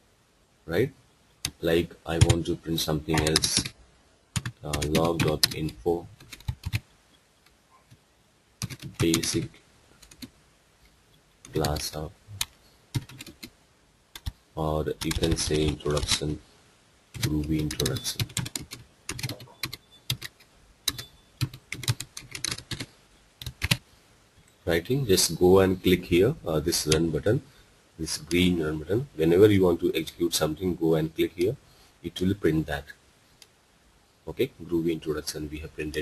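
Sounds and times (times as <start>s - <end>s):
computer keyboard keystrokes: 3.2s - 3.7s, 4.4s - 5.6s, 8.6s - 9.3s, 17.2s - 23.8s.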